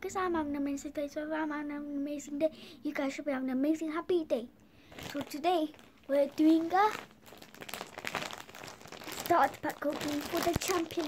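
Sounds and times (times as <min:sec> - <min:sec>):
plastic packaging crinkling: 0:04.8 - 0:11.0.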